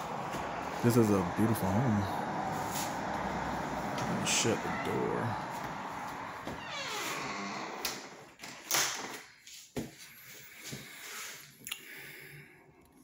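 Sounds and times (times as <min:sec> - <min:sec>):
door hinges squeaking: 0:06.4 - 0:09.2.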